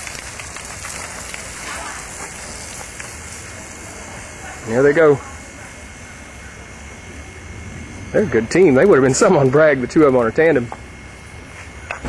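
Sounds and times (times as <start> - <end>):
steady hissing noise: 0.0 - 12.0.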